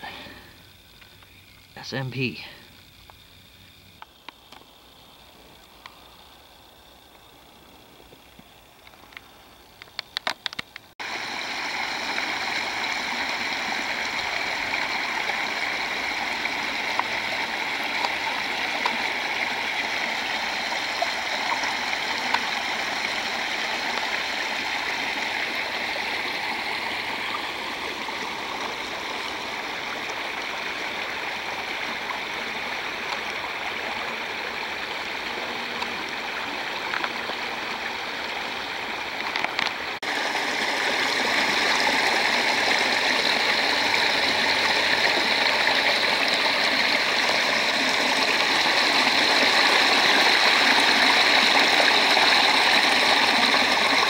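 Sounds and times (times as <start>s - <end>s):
water rushing along a ditch: 4.1s - 54.0s.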